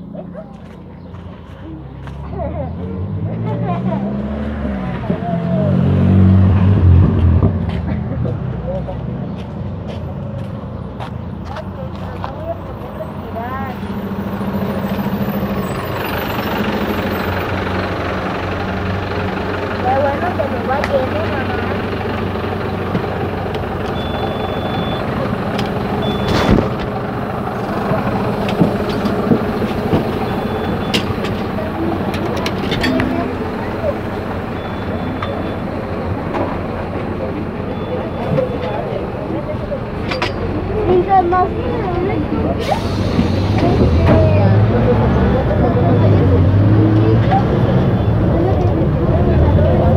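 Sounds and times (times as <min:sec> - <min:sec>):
bus engine drone: 0:00.0 - 0:49.9
short high beeps: 0:23.9 - 0:25.1, 0:26.0 - 0:26.6.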